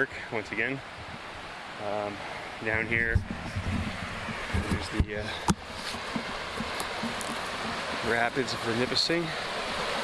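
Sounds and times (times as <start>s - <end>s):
river rapids rushing over rocks: 0.3s - 10.0s.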